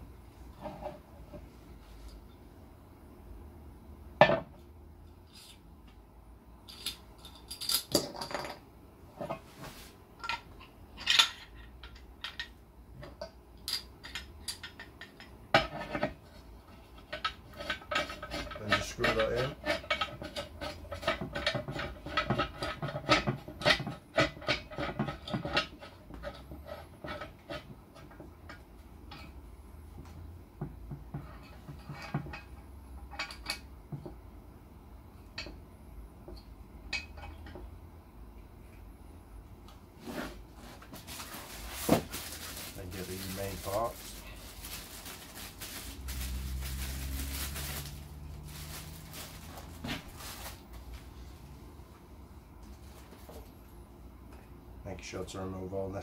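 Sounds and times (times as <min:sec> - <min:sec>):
handling noise with rustling: 0:06.6 - 0:34.2, 0:39.8 - 0:54.5
metal parts clinking: 0:06.7 - 0:08.6.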